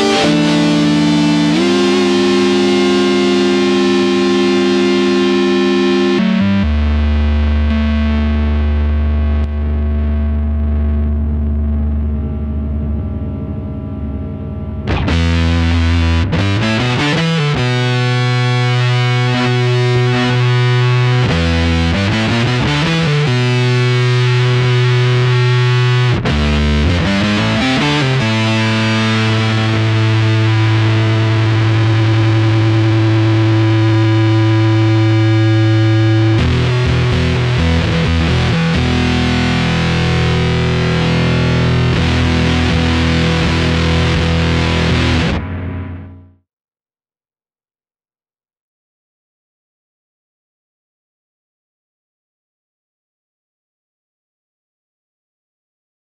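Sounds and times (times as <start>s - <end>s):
distorted electric guitar: 0.0s - 46.4s.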